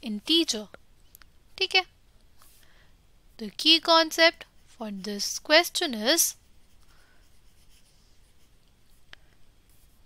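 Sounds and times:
stylus scratching on tablet: 0:03.8 - 0:09.1.

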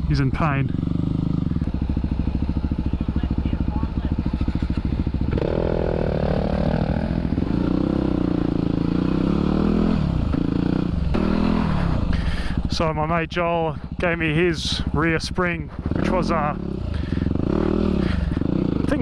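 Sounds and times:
dirt bike engine revving: 0:00.0 - 0:13.1, 0:14.0 - 0:19.0.

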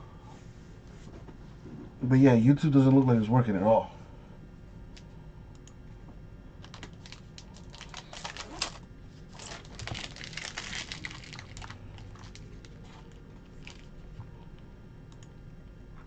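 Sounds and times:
wrapper crinkling: 0:06.6 - 0:14.0.

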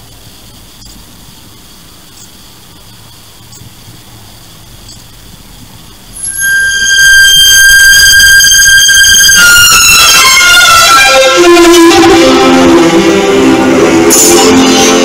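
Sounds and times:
tape hiss and hum: 0:00.0 - 0:15.0
high held note of logo music: 0:06.2 - 0:15.0.

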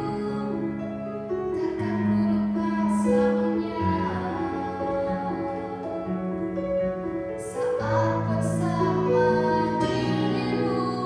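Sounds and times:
woman singing slow song: 0:07.5 - 0:11.0.

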